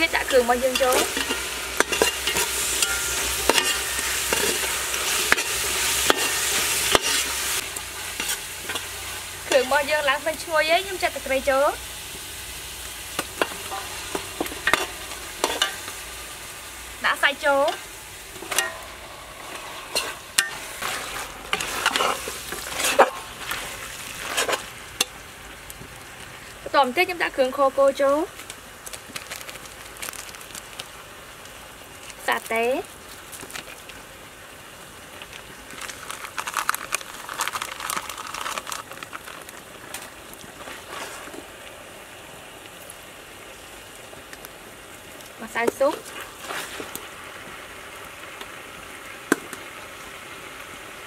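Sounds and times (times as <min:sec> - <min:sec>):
meat frying sizzle: 0:00.0 - 0:51.0
metal ladle scraping a pot: 0:00.2 - 0:09.7, 0:17.7 - 0:24.7
crinkling handling noises: 0:17.7 - 0:26.6, 0:28.3 - 0:43.1, 0:44.3 - 0:48.6.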